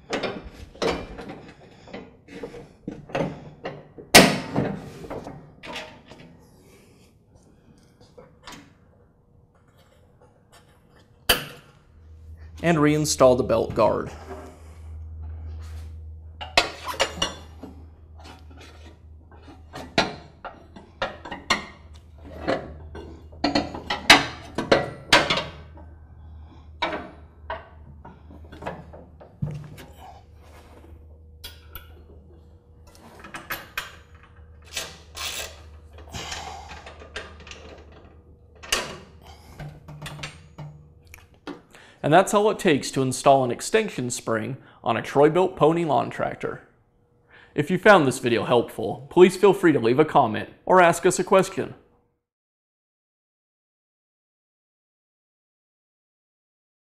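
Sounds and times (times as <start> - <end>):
steady low hum: 0.0 - 50.8.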